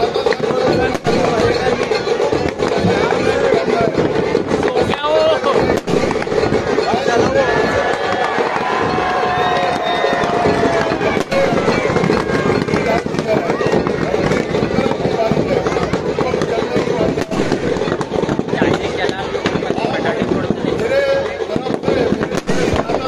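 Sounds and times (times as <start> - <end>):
crowd chatter: 0.0 - 23.0
firecrackers crackling and popping: 0.0 - 23.0.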